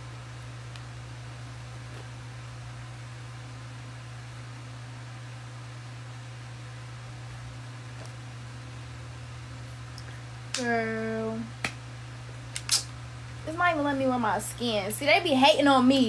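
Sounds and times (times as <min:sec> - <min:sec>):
electric fan humming and hissing: 0:00.0 - 0:16.0.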